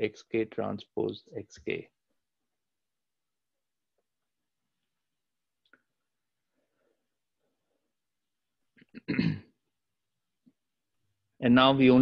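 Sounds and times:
man clearing throat: 8.9 - 9.6.

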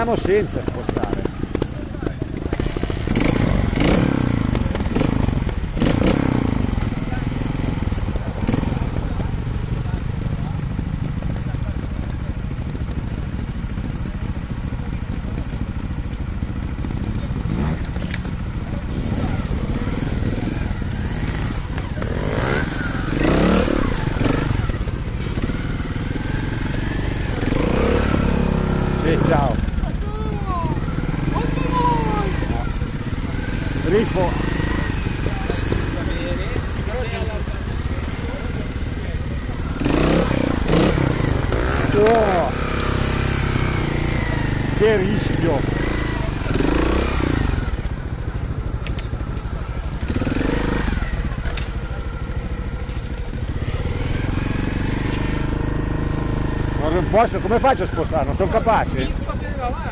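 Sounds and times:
motorcycle engines revving: 0.0 - 59.9
people's voices: 0.0 - 59.9.

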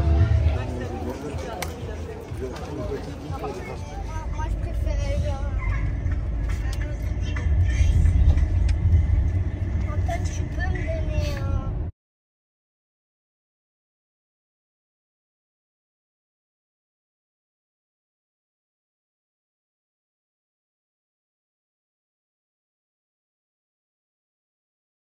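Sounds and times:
low vehicle rumble: 0.0 - 11.9
unclear background voices: 0.0 - 11.9.

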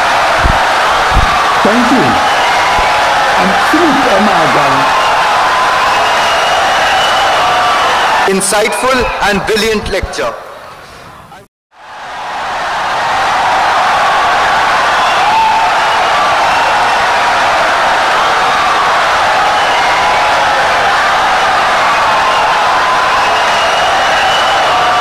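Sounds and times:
audience applause: 0.0 - 9.0, 11.8 - 25.0
voices cheering: 0.0 - 10.4, 11.8 - 25.0.

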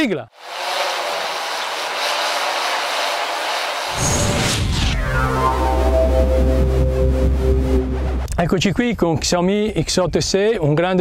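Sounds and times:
drone propellers buzzing: 0.4 - 8.4.

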